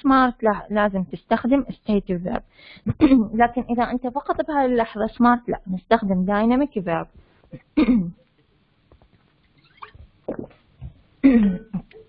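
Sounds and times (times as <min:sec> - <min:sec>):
woman's throat noises: 0:07.5 - 0:08.2, 0:09.8 - 0:12.0.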